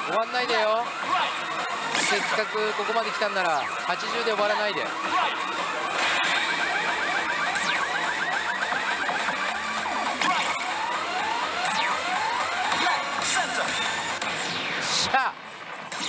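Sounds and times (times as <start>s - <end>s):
gaming hall din: 0.0s - 16.0s
slot machine electronic music: 0.0s - 16.0s.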